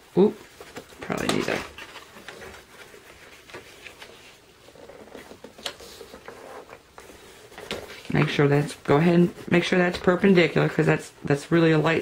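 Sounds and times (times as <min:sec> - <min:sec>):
paper rustling: 0:00.2 - 0:12.0.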